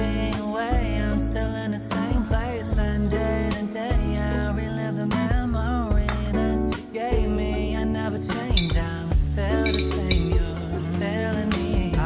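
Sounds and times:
song with singing voice: 0.0s - 12.0s.

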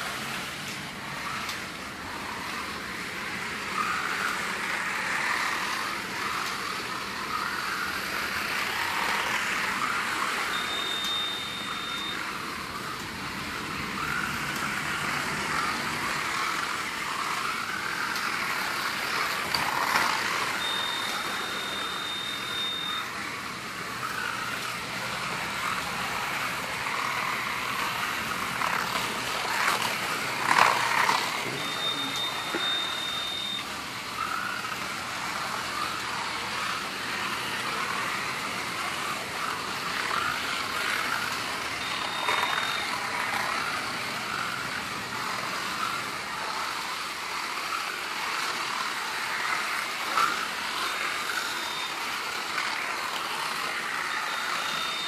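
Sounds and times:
slot car motors whining: 0.0s - 55.0s
short high electronic beep: 10.5s - 12.2s, 20.6s - 23.1s, 31.4s - 33.7s, 41.8s - 42.9s, 54.2s - 55.0s.

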